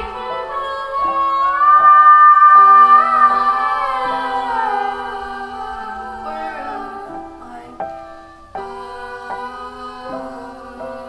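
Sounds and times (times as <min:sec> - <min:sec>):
backing vocal harmonies: 0:00.0 - 0:11.0
woman singing long note: 0:00.0 - 0:11.0.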